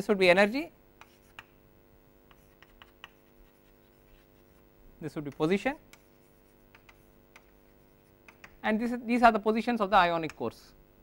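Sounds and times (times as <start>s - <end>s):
low steady hum: 0.0s - 11.0s
chalk writing on chalkboard: 1.0s - 1.6s, 2.2s - 8.6s.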